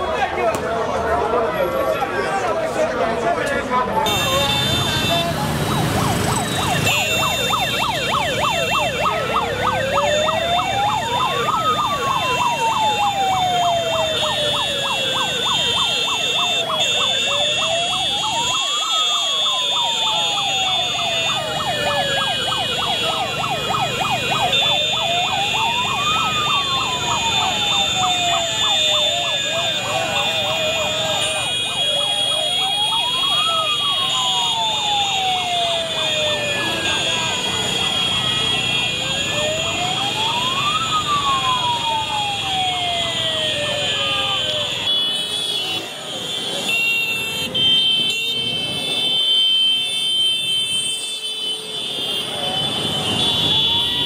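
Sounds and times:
voices: 0.0 - 49.2
motorcycle engines: 0.0 - 54.0
traffic noise: 0.0 - 54.0
siren wailing: 4.1 - 45.9, 47.5 - 54.0.

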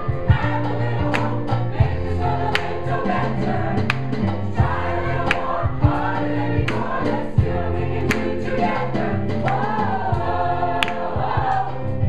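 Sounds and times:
mixed choir singing in harmony: 0.0 - 12.0.

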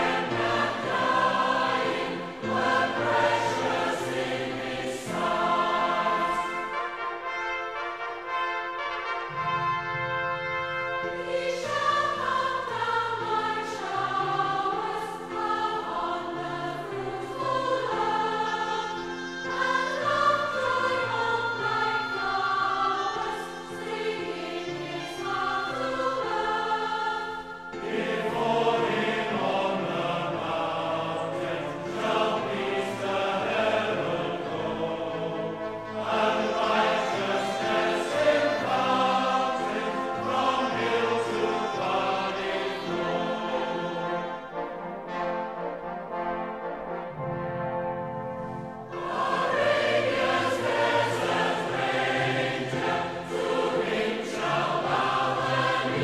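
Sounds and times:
choir singing a hymn: 0.0 - 56.0
instrumental accompaniment: 0.0 - 56.0.

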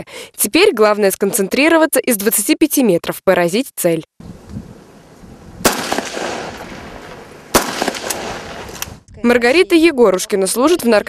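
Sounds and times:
pistol shots echoing: 5.6 - 8.8.

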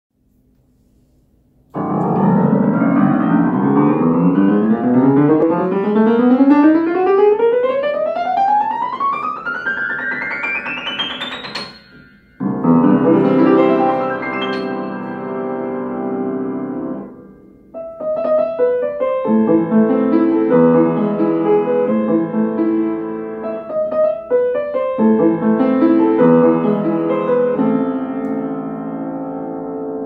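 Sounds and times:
loud piano chord: 1.6 - 30.0
upright piano ascending run: 1.6 - 30.0.

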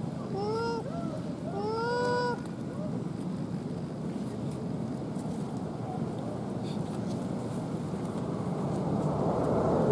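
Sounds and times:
steady background hiss: 0.0 - 9.9
young monkey whining cry: 0.3 - 2.4.

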